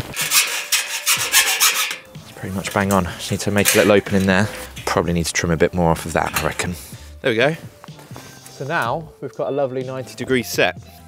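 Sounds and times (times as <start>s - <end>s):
metal rasping on steel: 0.0s - 2.2s.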